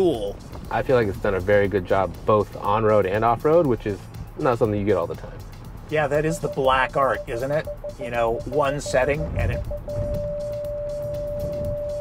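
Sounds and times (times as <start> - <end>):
steady tone: 6.1 - 11.1.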